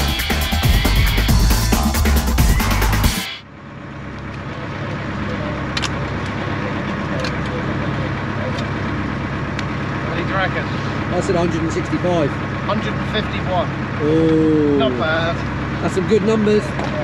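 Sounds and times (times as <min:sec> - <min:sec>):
boat engine running: 0:00.0 - 0:17.0.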